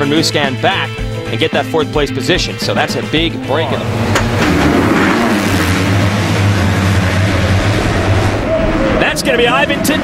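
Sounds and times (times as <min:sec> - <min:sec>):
motocross bikes at full throttle: 0:02.6 - 0:10.0.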